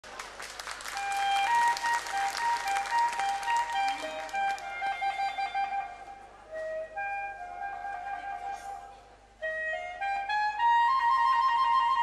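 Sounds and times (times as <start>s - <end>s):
audience applause: 0.0s - 4.6s
clarinet polka melody: 1.0s - 12.0s.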